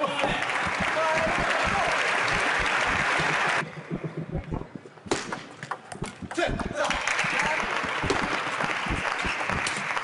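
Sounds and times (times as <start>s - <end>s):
spectators applauding: 0.0s - 3.8s, 6.8s - 10.0s.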